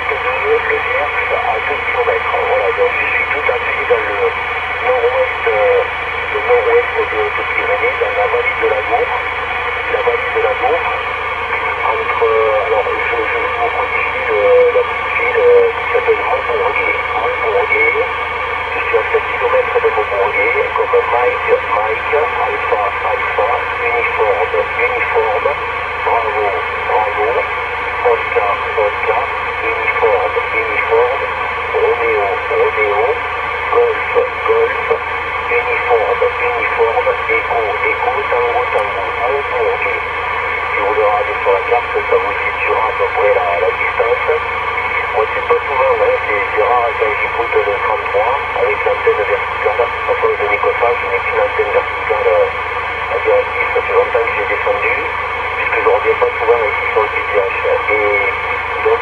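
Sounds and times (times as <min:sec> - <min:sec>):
radio band hiss: 0:00.0 - 0:59.0
radio voice thin and narrow: 0:00.0 - 0:59.0.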